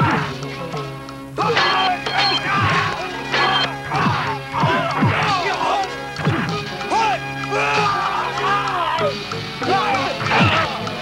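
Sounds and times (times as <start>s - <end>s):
background music with drone: 0.0s - 11.0s.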